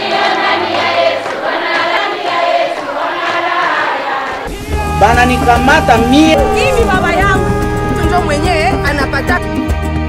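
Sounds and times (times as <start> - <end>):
women singing together: 0.0 - 5.0.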